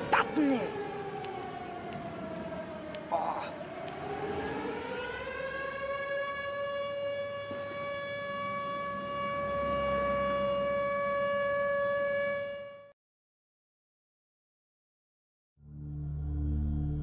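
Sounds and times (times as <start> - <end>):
siren wailing: 0.0 - 12.9.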